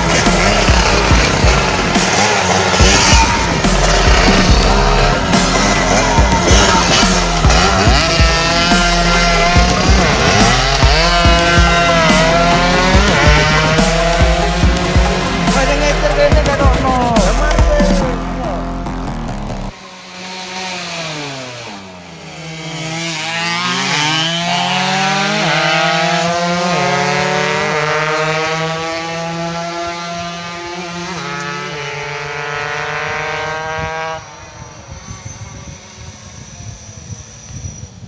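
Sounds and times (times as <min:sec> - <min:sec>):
motorcycle engine revving: 0:00.0 - 0:38.0
wind noise on microphone: 0:32.5 - 0:38.0.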